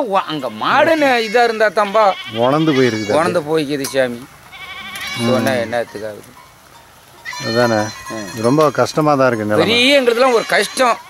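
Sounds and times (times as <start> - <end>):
high wavering bleat: 0.3 - 3.6, 4.5 - 5.9, 7.2 - 8.7, 9.6 - 11.0.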